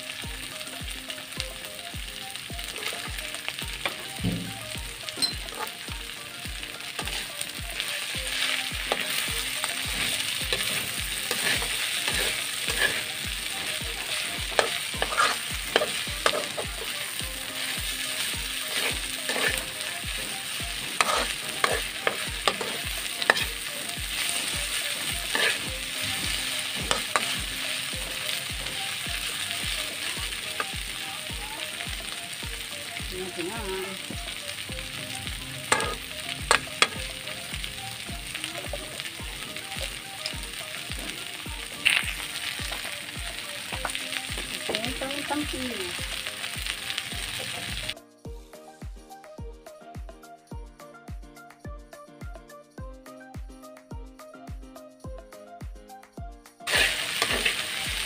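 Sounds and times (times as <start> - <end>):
vegetables sizzling in a wok: 0.0 - 48.0, 56.6 - 58.0
metal spatula scraping a pan: 5.2 - 5.8, 9.9 - 17.0, 18.7 - 19.8, 20.8 - 27.4, 35.7 - 37.0, 56.7 - 57.8.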